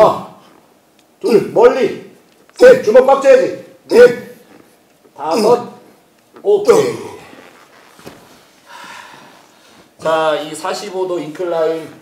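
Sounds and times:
man exhaling heavily: 8.6s - 9.4s.

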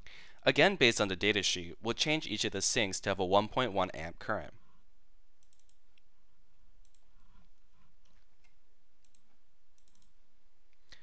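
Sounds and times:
steady background hiss: 0.0s - 11.0s
computer mouse clicks: 5.4s - 6.1s, 6.8s - 11.0s.

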